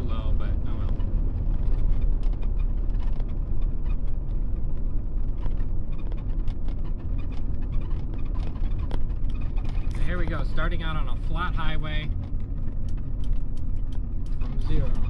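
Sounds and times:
diesel engine running at low revs: 0:00.0 - 0:15.0.

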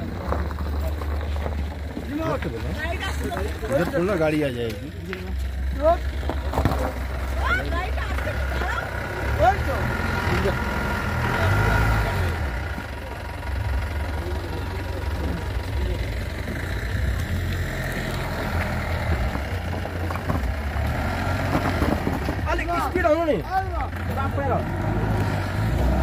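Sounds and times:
car engine running: 0:00.0 - 0:26.0
people's voices: 0:00.0 - 0:26.0.

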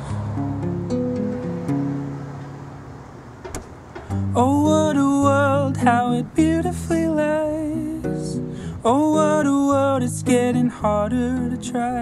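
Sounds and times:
acoustic guitar chord: 0:00.0 - 0:03.0, 0:04.0 - 0:12.0
road traffic hiss: 0:00.0 - 0:12.0.

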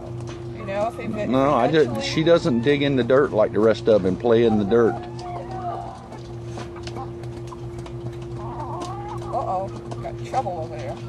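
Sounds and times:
hens clucking: 0:00.5 - 0:11.0
beaks pecking at feed: 0:03.6 - 0:11.0.

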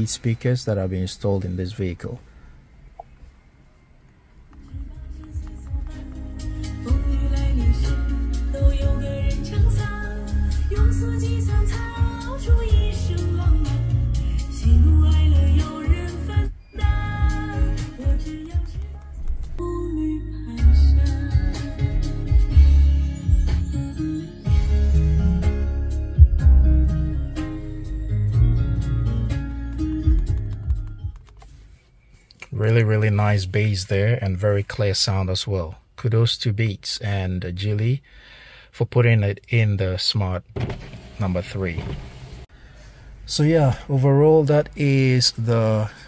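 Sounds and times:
song with singing and heavy bass: 0:04.6 - 0:30.4.

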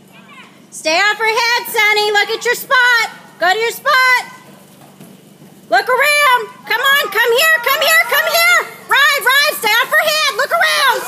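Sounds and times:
spectators shouting and cheering: 0:06.6 - 0:11.0.

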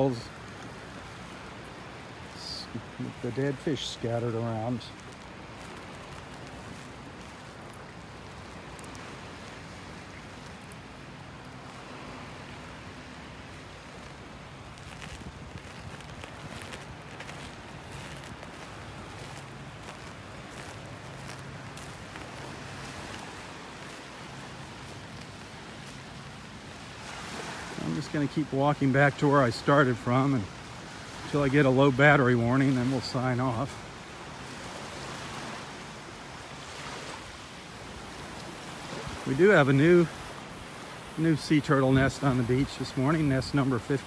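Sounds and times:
wind hiss on microphone: 0:00.0 - 0:44.0
footsteps crunching on shells: 0:00.4 - 0:27.7.

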